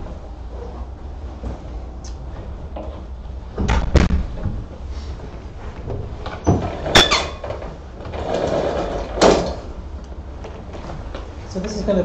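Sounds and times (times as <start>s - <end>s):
projection screen rattling and scraping: 0.0s - 9.8s.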